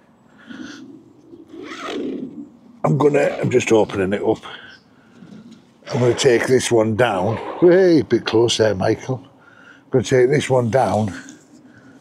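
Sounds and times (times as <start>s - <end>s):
zip being pulled: 1.6s - 2.1s.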